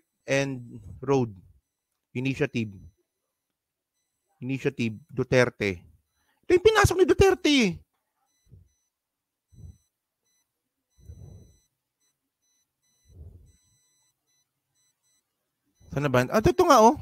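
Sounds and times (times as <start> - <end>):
faint high electronic beeping: 0.0 - 17.0.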